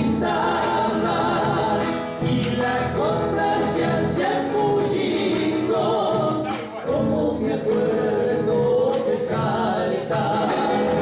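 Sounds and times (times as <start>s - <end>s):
strummed acoustic guitar: 0.0s - 11.0s
voices singing in harmony: 0.0s - 11.0s.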